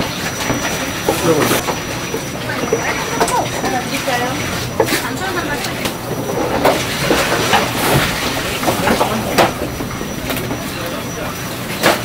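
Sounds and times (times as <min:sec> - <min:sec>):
busy background voices: 0:00.0 - 0:12.0.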